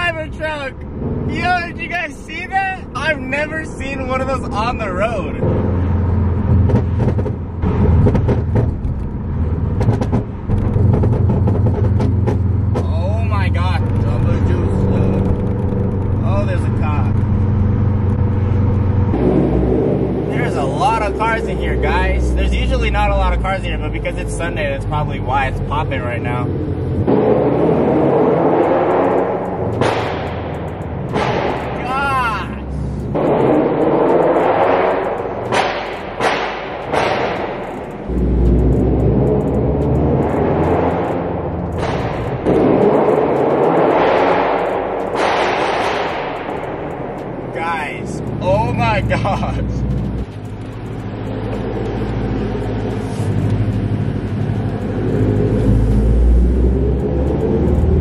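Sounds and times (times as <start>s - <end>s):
car engine revving: 0.0s - 58.0s
exhaust pops and crackles: 0.0s - 58.0s.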